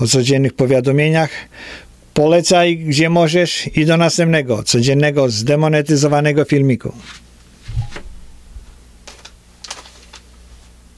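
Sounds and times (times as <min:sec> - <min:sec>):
low steady hum: 0:00.0 - 0:10.9.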